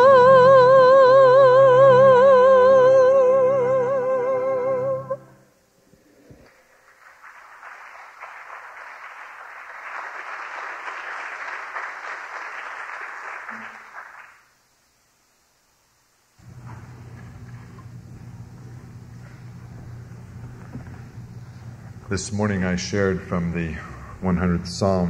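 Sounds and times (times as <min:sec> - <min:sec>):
audience applauding: 0:06.4 - 0:14.5
steady low hum: 0:14.7 - 0:25.0.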